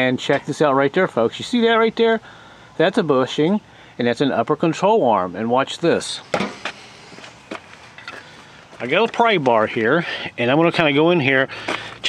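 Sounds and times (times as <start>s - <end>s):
man talking: 0.0s - 6.3s, 8.8s - 12.0s.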